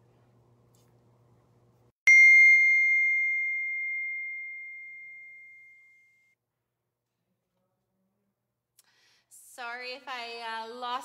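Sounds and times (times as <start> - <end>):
bell-like ding: 2.1 - 6.4.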